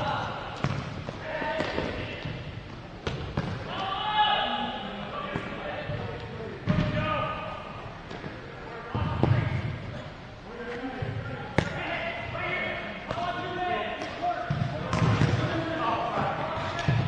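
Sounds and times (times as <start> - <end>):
ball thudding on hard court: 0.6 - 0.9, 14.5 - 15.4.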